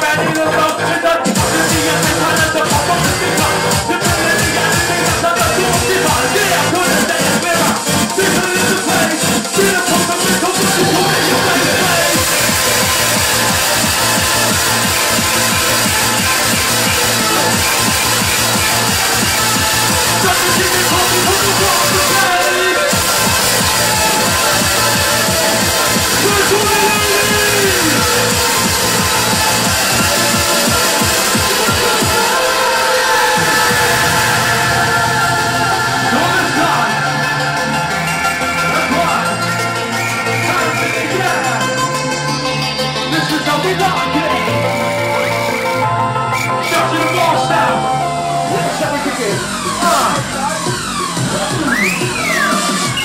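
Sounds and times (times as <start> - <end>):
hardcore rave music: 0.0 - 53.0
pounding kick and bass: 0.0 - 53.0.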